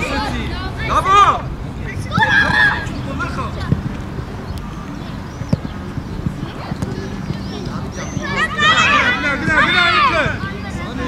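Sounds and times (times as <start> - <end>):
distant players shouting: 0.0 - 11.0
steady low rumble: 0.0 - 11.0
ball being kicked: 5.4 - 8.4.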